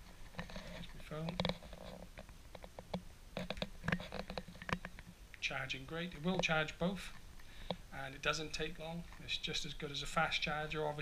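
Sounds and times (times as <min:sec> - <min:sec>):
phone and cables handled: 0:00.0 - 0:05.2.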